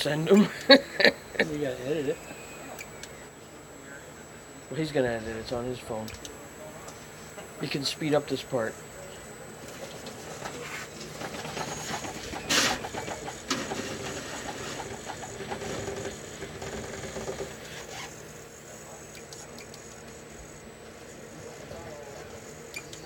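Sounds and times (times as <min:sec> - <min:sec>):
small electric winch whirring: 0:00.0 - 0:03.4, 0:04.4 - 0:23.0.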